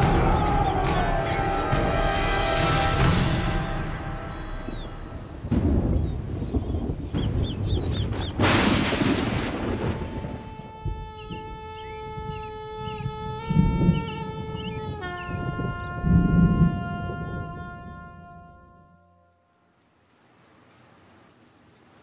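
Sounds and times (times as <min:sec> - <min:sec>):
held horn-like chord: 0:00.0 - 0:05.4, 0:10.4 - 0:19.5
deep booming hits: 0:00.0 - 0:11.5.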